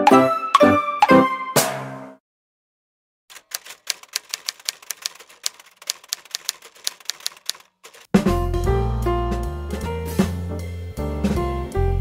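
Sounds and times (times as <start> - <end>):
typewriter key clicks: 3.3 - 8.1.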